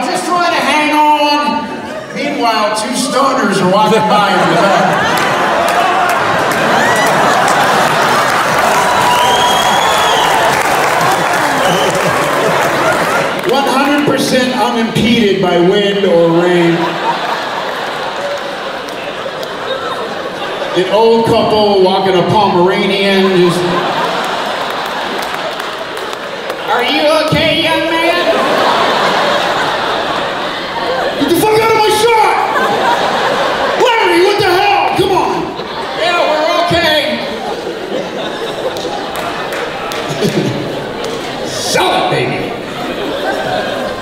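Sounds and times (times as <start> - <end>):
audience laughing: 1.4 - 44.0
audience applauding: 4.0 - 14.4, 16.4 - 20.8, 23.3 - 44.0.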